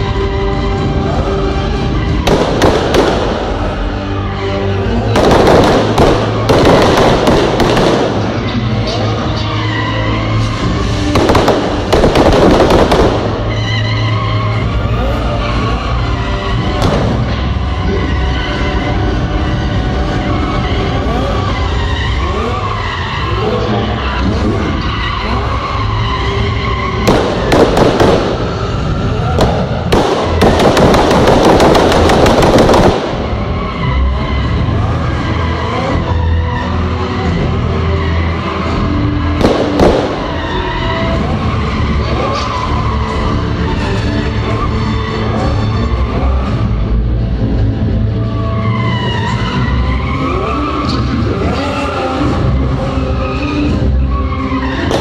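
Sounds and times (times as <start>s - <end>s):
music over loudspeakers: 0.0s - 35.1s, 35.7s - 55.0s
car engines revving: 0.0s - 55.0s
tyre squeal: 8.5s - 10.9s, 20.1s - 27.5s, 48.3s - 55.0s.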